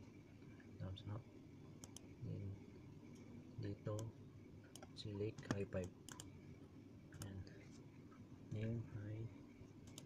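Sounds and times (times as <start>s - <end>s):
computer mouse clicks: 1.8s - 2.1s, 4.7s - 6.3s, 7.2s - 7.4s.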